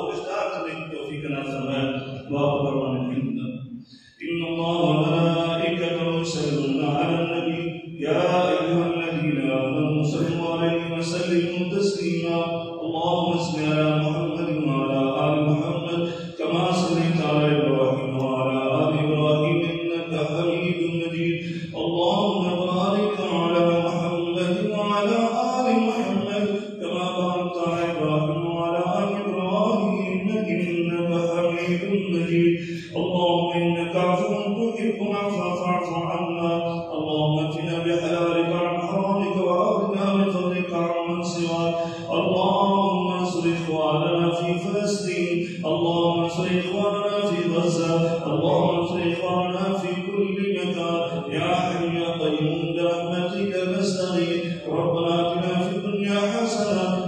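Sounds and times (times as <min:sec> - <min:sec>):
man chanting melodic recitation: 0:00.0 - 0:57.0.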